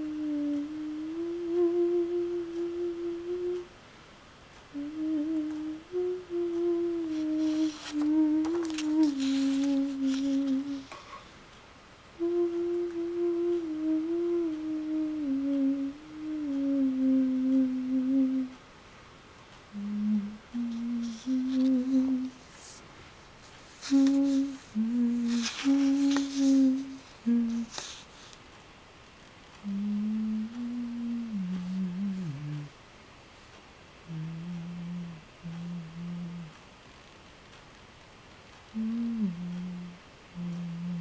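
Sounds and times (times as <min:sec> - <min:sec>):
person humming a slow tune: 0:00.0 - 0:03.8, 0:04.6 - 0:11.2, 0:12.1 - 0:18.7, 0:19.7 - 0:22.7, 0:23.7 - 0:28.3, 0:29.6 - 0:32.8, 0:34.0 - 0:36.6, 0:38.6 - 0:41.0.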